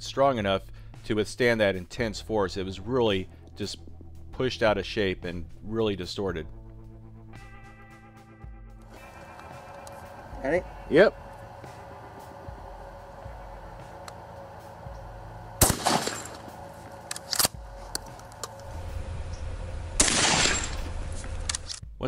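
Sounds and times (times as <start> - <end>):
shotgun shot echoing: 15.6 - 16.6, 20.0 - 21.1.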